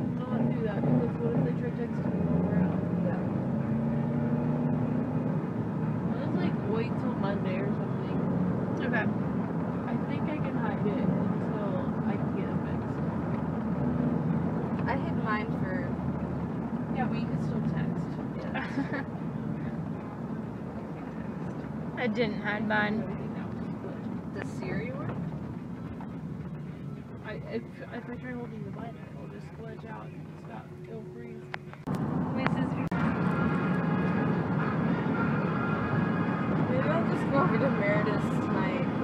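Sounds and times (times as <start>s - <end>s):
car engine and road noise: 0.0s - 39.0s
indistinct talking: 6.0s - 13.3s, 14.7s - 39.0s.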